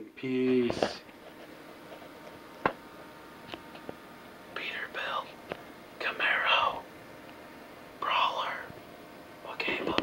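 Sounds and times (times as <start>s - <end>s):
person whispering: 4.6s - 5.4s, 6.0s - 6.8s, 8.0s - 8.7s, 9.4s - 10.0s.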